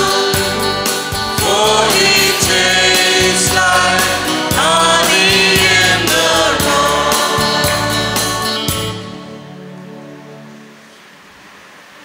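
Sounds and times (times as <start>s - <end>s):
held hymn chord: 0.0s - 11.2s
faint room noise: 9.1s - 12.0s.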